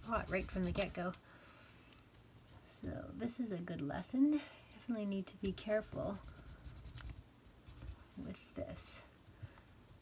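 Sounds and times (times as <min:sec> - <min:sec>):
scratchy rubbing strokes on paper: 0:00.0 - 0:01.0, 0:05.8 - 0:08.3.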